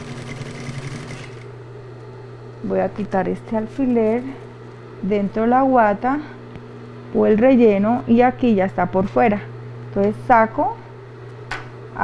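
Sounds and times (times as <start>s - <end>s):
sewing machine stitching: 0.0s - 1.5s
sewing machine motor humming: 0.0s - 1.6s.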